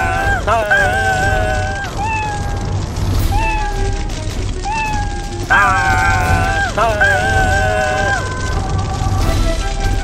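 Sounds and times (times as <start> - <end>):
wavering wail: 0.0 - 9.1
cartoon cat meowing: 0.6 - 2.6, 3.3 - 8.3.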